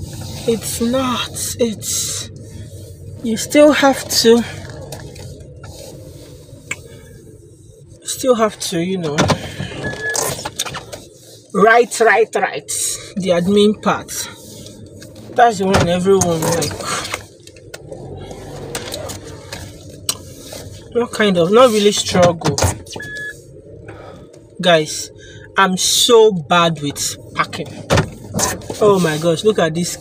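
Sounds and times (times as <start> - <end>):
low rumble in car cabin: 0.0 - 30.0.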